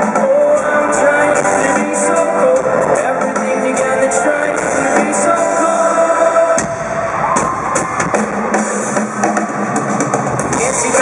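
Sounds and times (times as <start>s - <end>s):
amplified live band music: 0.0s - 11.0s
drum kit playing: 0.0s - 11.0s.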